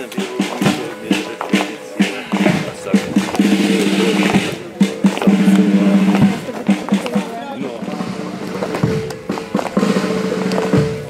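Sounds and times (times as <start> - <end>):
band music with long held notes: 0.0 - 11.0.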